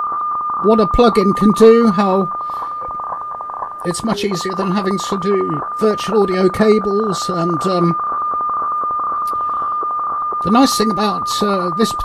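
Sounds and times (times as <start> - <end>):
background hiss: 0.0 - 12.0
fine irregular ticks: 0.0 - 12.0
steady radio tone: 0.0 - 12.0.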